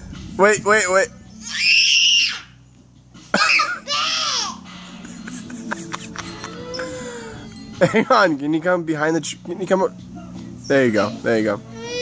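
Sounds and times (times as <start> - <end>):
man laughing: 4.9 - 7.1, 7.8 - 8.2
girl whimpering: 6.4 - 7.5.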